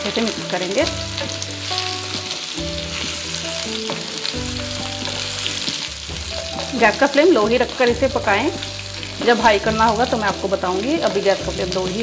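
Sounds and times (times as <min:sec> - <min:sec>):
food sizzling in oil: 0:00.0 - 0:12.0
quiet background music: 0:00.0 - 0:12.0.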